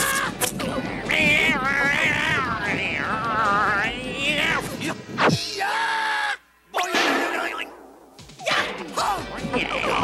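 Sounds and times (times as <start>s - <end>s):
cartoon cats yowling and screeching: 0.0s - 4.6s.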